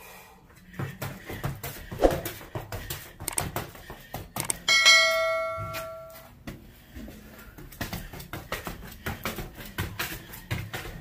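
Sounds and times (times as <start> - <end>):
sneaker footsteps on concrete: 0.6 - 11.0
bright bell chime: 4.7 - 6.2.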